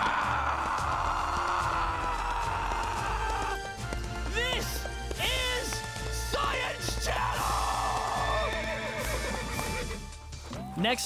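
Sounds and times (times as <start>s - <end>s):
background music: 0.0s - 11.0s
horse whinnying: 7.3s - 10.2s.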